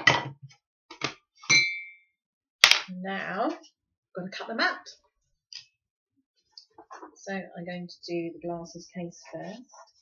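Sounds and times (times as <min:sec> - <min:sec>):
ringing clink: 0:01.5 - 0:02.0.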